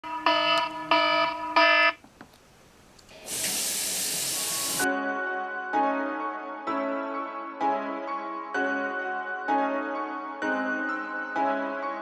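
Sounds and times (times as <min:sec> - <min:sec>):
phone alarm chimes: 0:00.0 - 0:02.0
steady hiss: 0:03.0 - 0:04.9.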